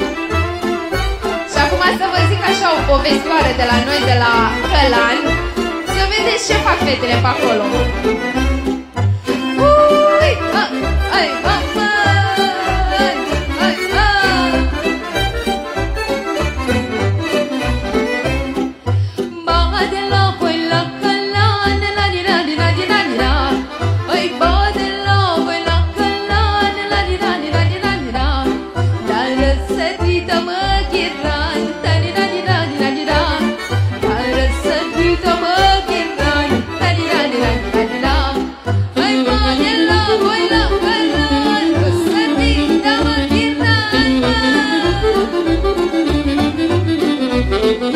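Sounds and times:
folk band with fiddle melody: 0.0 - 47.9.

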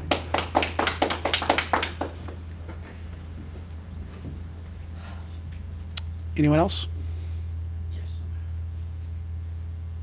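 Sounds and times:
audience clapping: 0.0 - 3.1.

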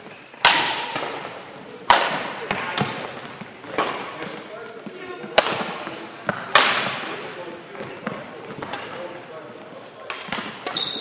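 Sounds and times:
racket striking shuttlecock: 0.4 - 1.3, 1.9 - 3.1, 5.3 - 7.0
shoe squeaking on hall floor: 10.6 - 11.0.

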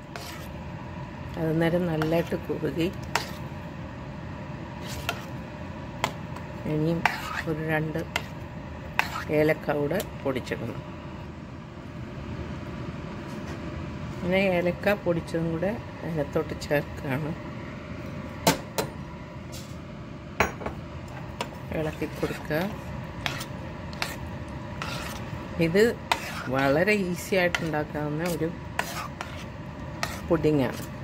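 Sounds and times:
spoon stirring batter in metal bowl: 0.0 - 0.6, 1.7 - 3.5, 4.8 - 5.4, 6.0 - 10.1, 21.2 - 31.0
steady background hum and hiss: 0.0 - 31.0.

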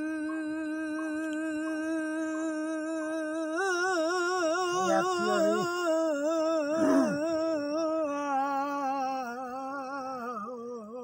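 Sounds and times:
man singing a long note: 0.0 - 10.8.

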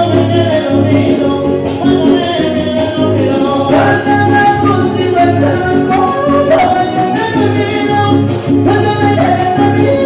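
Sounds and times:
person singing: 0.7 - 10.0.

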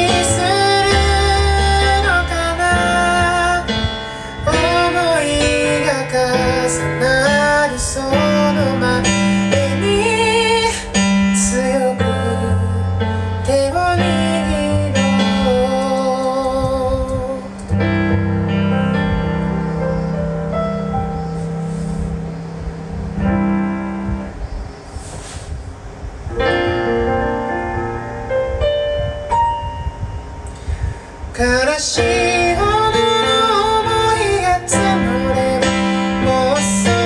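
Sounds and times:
bass line: 0.0 - 10.9, 11.5 - 24.7
high voice singing: 0.0 - 17.8, 31.2 - 37.0
sustained keyboard chords: 0.0 - 37.0.

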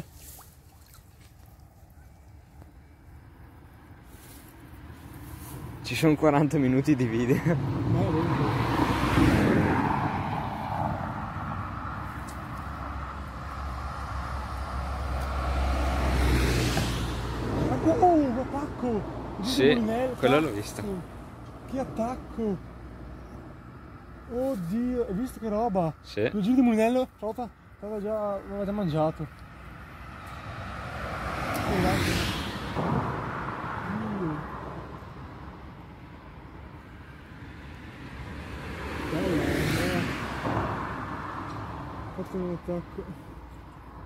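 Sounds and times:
low traffic rumble: 0.0 - 44.0
vehicles passing: 0.0 - 44.0.

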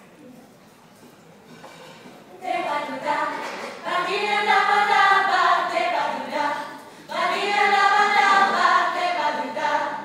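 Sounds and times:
vocal group singing in harmony: 2.4 - 10.0.

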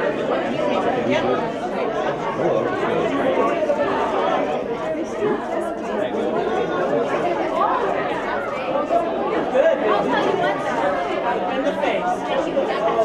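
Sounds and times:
babble of overlapping voices: 0.0 - 13.0.

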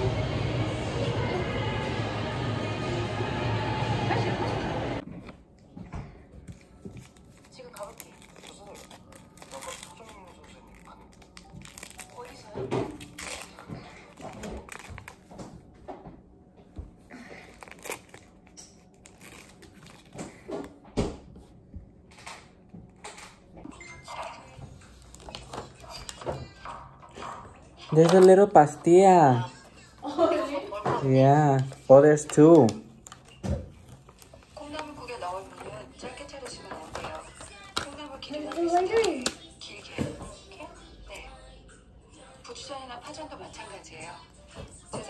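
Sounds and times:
background music: 0.0 - 5.0
packaging crinkling and rustling: 6.5 - 15.4, 17.3 - 20.5, 27.9 - 29.1, 31.3 - 39.4.

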